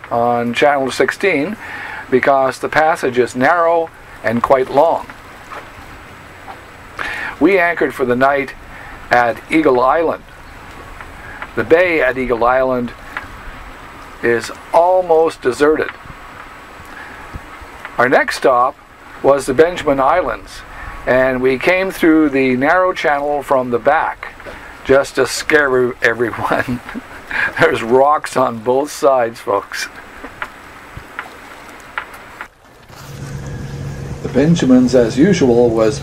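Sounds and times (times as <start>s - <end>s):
water lapping and splashing: 0.0s - 34.2s
fan hiss: 0.0s - 36.0s
wind on microphone: 8.4s - 18.3s
steady low hum: 32.8s - 36.0s.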